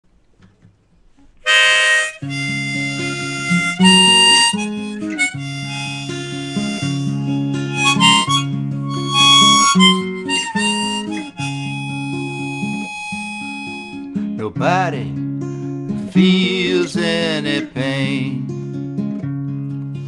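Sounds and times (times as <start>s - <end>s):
harmonica phrases: 1.4s - 15.2s
strummed acoustic guitar chords: 1.5s - 20.0s.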